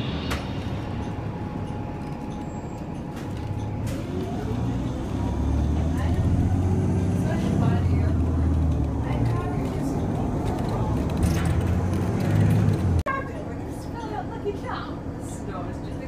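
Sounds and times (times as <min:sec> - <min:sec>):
low engine rumble: 0:00.0 - 0:16.0.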